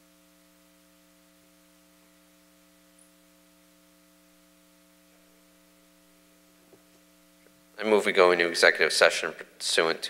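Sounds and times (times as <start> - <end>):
faint electrical mains hum: 0.0 - 10.0
man speaking: 7.8 - 10.0.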